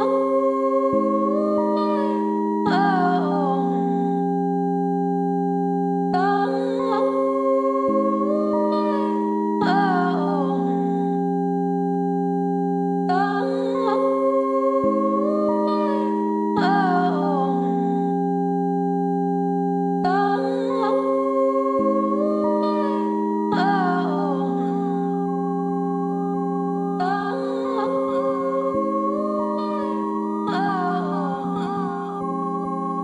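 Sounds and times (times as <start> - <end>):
held synth chord: 0.0 - 33.0.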